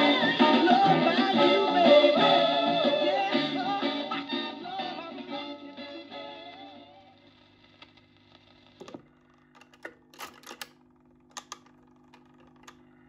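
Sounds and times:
tone arm clicks and clacks: 9.6 - 12.8.

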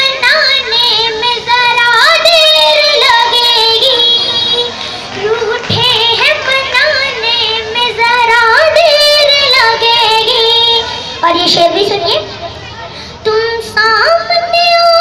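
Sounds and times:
girl singing over loudspeakers: 0.0 - 15.0.

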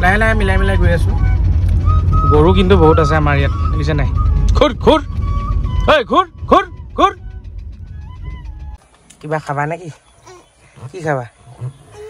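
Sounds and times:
car cabin rumble: 0.0 - 8.8.

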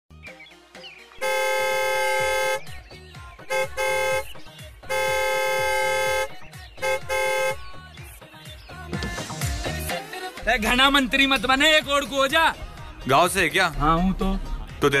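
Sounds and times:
background music: 0.1 - 15.0
car horn honking: 1.2 - 2.8, 3.4 - 7.8.

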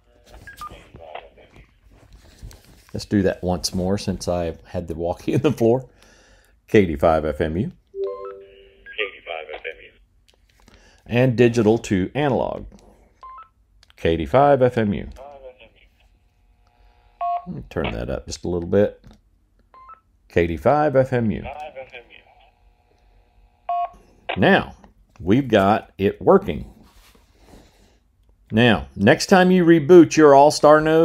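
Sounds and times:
two-tone radio beep: 8.0 - 9.2
man's voice over radio: 8.9 - 10.0, 15.2 - 15.9, 21.4 - 22.5.

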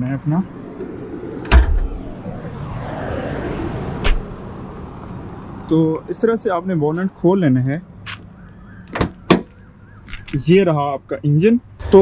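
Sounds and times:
bonnet latch popping: 1.5 - 2.0.

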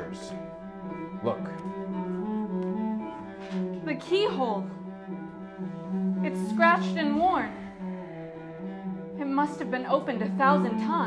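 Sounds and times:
cello bowing low notes: 0.0 - 11.0.

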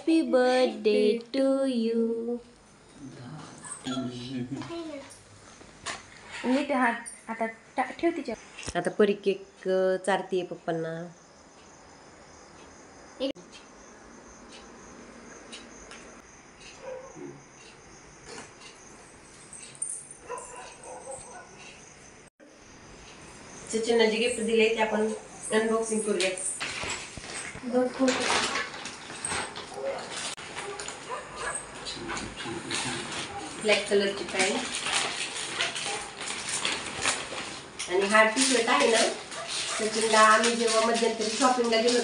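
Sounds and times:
plastic bag rustling: 32.4 - 42.0.

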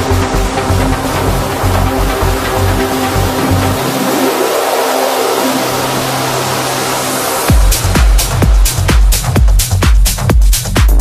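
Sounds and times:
noisy synth texture: 0.0 - 9.5.

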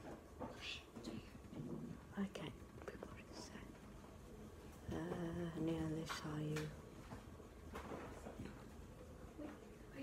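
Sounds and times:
person whispering: 2.2 - 3.8.

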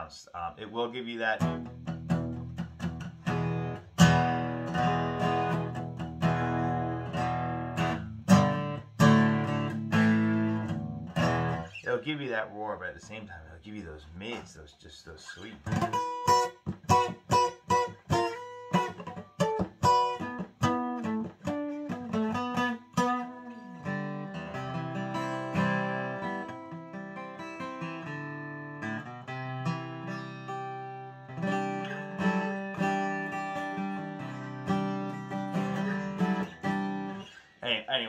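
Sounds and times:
acoustic guitar playing: 0.0 - 13.5, 15.3 - 38.0.

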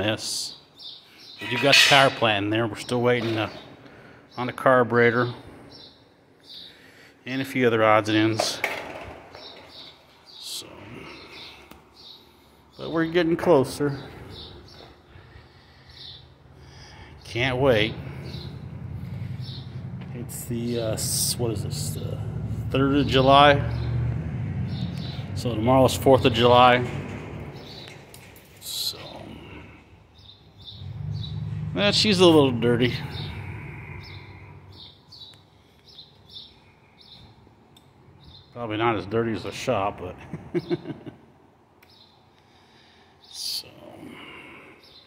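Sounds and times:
low hum: 14.1 - 28.4.

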